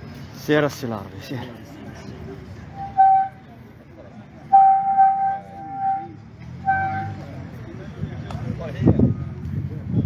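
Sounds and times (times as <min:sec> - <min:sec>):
high steady whistle: 0:04.5 - 0:07.2.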